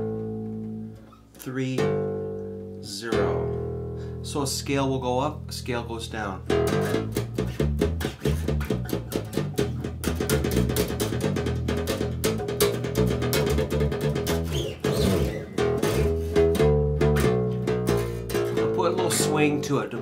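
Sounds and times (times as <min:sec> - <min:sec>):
electric bass plucked notes: 0:00.0 - 0:20.0.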